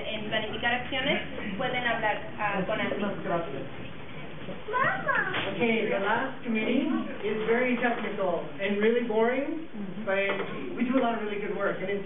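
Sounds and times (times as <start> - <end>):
people speaking: 0.0 - 3.7, 4.6 - 12.0.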